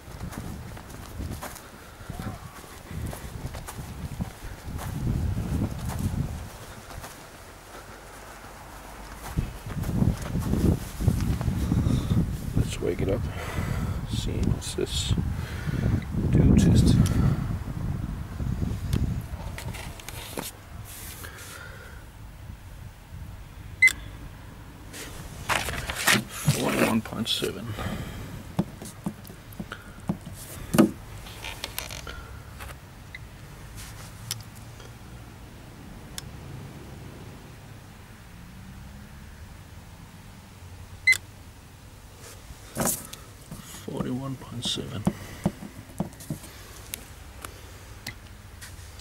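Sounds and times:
faint outdoor background: 0.0s - 49.0s
handling rustle: 2.4s - 11.7s, 19.4s - 21.6s, 24.9s - 27.6s, 28.6s - 32.8s, 33.7s - 34.6s, 42.2s - 47.6s
paper rustling: 19.6s - 21.2s, 25.0s - 27.1s.

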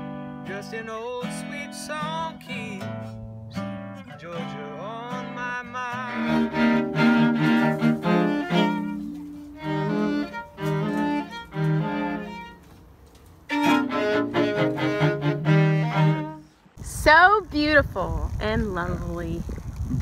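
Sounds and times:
string trio playing: 6.0s - 16.6s.

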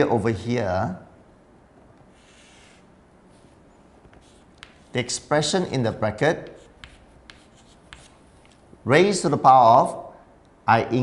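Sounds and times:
chalk scratching on chalkboard: 2.1s - 5.2s, 6.4s - 8.5s
man talking: 4.9s - 6.6s, 10.7s - 11.0s.

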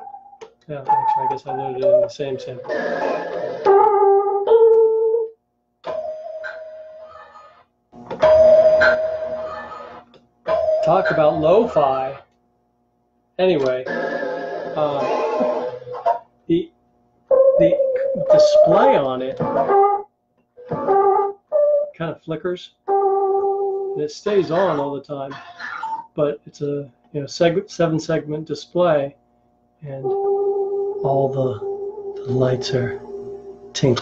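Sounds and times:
lo-fi sampler keyboard notes: 0.0s - 7.3s, 8.0s - 12.2s, 17.3s - 22.1s, 22.8s - 25.0s, 29.9s - 34.0s.

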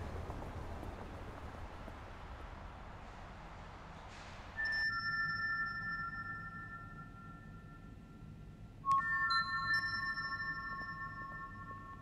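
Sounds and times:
synthesized chime tones: 4.6s - 8.3s, 8.9s - 12.0s.

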